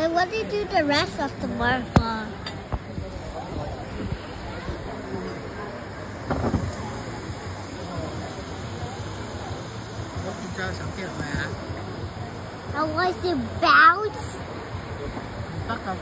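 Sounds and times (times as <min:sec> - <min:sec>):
murmur of people talking: 0:00.0 - 0:16.0.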